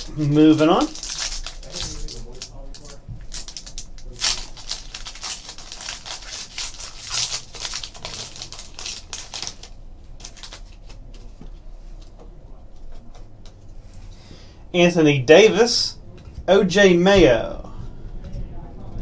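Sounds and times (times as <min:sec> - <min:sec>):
card pack crinkling and rustling: 0:00.0 - 0:11.2.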